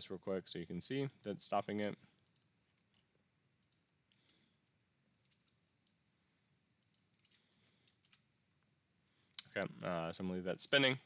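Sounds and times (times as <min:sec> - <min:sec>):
computer mouse clicks: 0:02.2 - 0:06.0, 0:06.8 - 0:08.3.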